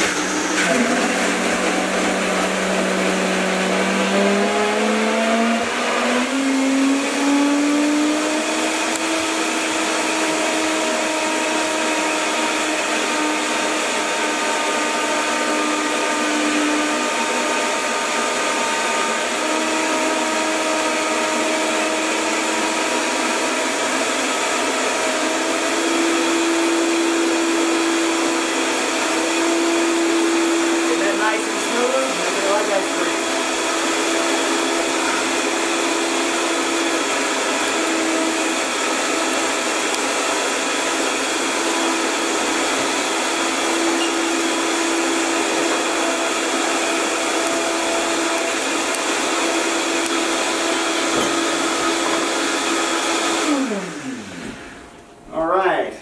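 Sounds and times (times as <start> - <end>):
blender grinding ice: 0.0 - 55.1
blender motor whining: 0.0 - 55.2.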